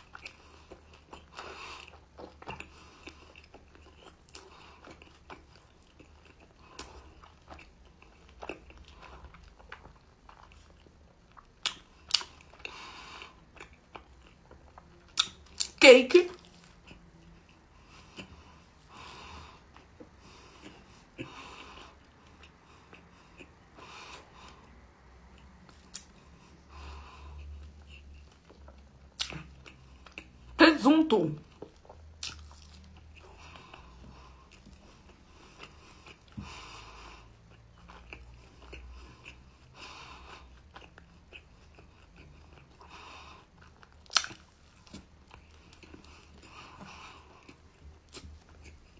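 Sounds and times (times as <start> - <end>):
chewing pastry: 0.0 - 48.9
soft wet mouth clicks: 15.1 - 15.8, 44.0 - 45.0.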